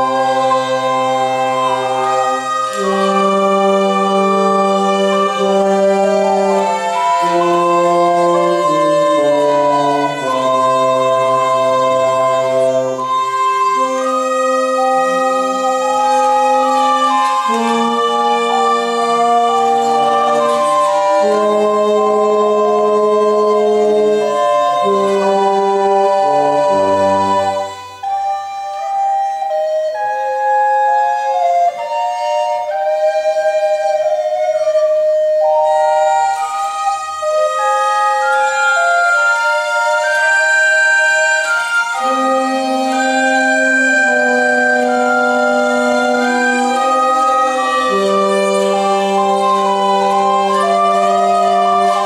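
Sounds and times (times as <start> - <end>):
early wind ensemble playing chords: 0.0 - 52.0.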